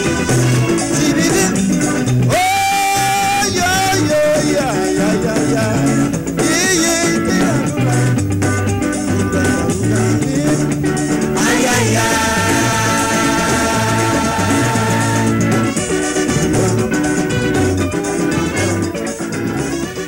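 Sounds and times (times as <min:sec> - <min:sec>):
calypso band music: 0:00.0 - 0:20.0.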